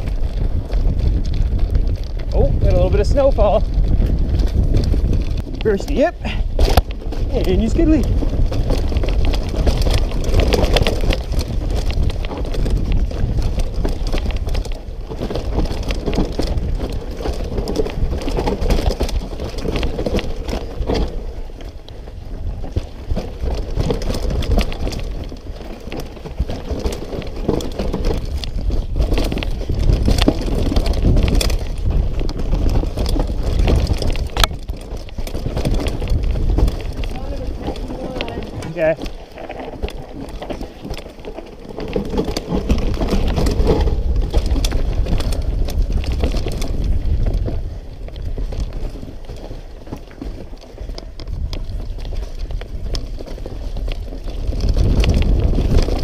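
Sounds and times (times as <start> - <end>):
bike tyres rattling on dirt: 0.0 - 56.0
wind buffeting microphone: 0.0 - 56.0.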